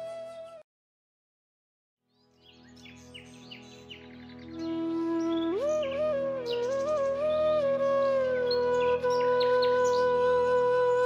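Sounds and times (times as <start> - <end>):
flute holding low note: 0.0 - 0.6, 4.6 - 11.0
birds chirping: 2.2 - 7.3, 8.4 - 10.4.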